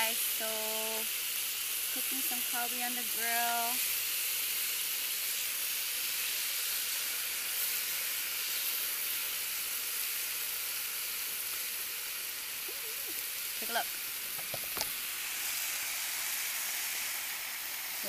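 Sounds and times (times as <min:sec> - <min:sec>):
steaks sizzling on a grill: 0:00.0 - 0:18.0
person humming: 0:12.7 - 0:13.2.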